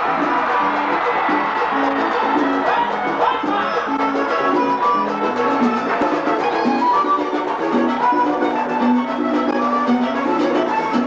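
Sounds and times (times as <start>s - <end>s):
live accordion music: 0.0s - 11.0s.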